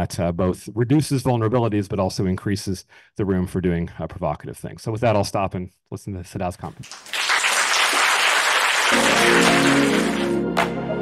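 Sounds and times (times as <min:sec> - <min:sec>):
audience applauding: 0:06.8 - 0:10.8.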